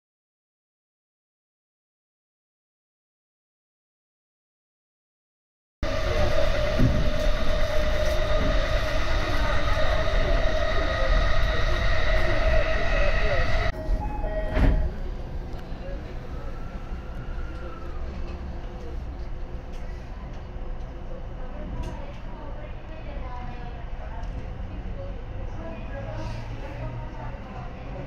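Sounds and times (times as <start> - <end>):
train wheels rumbling on rail: 5.8 - 22.4
station platform hum: 5.8 - 28.0
train whine: 5.8 - 28.0.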